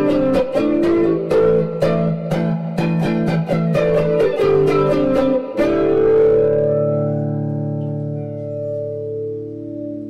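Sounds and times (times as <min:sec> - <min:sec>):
guitar picked notes: 0:00.0 - 0:10.0
ringing guitar chord: 0:00.0 - 0:10.0.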